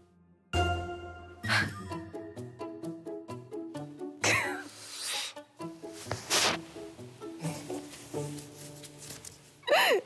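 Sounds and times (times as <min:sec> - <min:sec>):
light plucked background music: 0:00.1 - 0:10.0.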